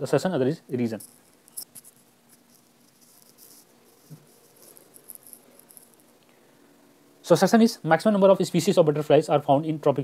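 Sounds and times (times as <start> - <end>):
low steady hum: 0.0 - 10.0
soft ticks and rustles: 0.7 - 6.4.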